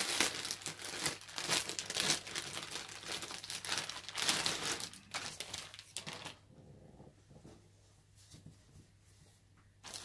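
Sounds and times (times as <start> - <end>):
plastic bag crinkling: 0.0 - 6.5.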